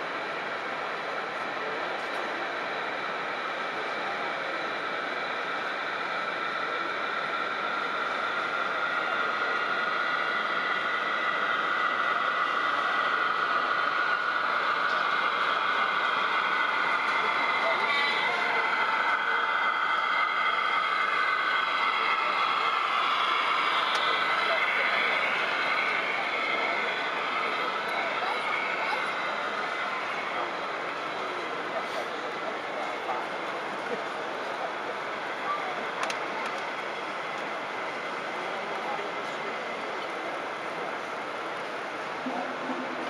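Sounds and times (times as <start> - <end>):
chatter of crowd in a hall: 0.0 - 43.0
model train running: 0.0 - 43.0
faint whine: 42.0 - 43.0.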